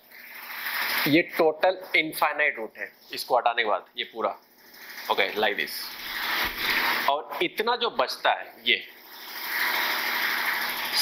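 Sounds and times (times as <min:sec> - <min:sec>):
marker scraping on whiteboard: 0:04.6 - 0:07.1, 0:09.2 - 0:11.0.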